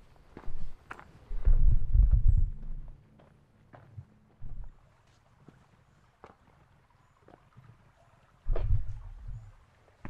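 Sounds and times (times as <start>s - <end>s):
footsteps on dirt path: 0.0s - 6.7s, 8.5s - 9.4s
low rumble on microphone: 1.3s - 3.0s, 8.5s - 9.5s.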